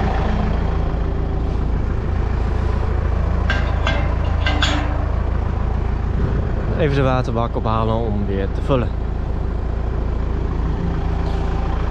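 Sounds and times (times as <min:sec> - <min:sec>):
tractor engine idling: 0:00.0 - 0:11.9
metal drawbar clanks: 0:03.2 - 0:05.8.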